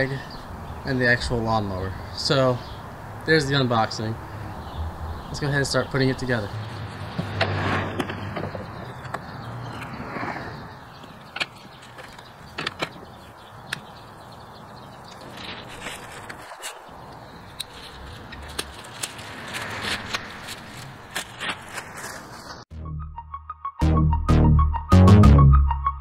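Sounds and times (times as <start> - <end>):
outdoor background noise: 0.0 - 22.7.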